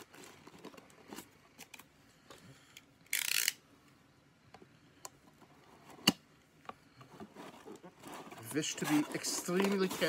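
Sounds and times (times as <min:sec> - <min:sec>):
cardboard scraping and rustling: 0:00.0 - 0:01.6, 0:06.9 - 0:10.0.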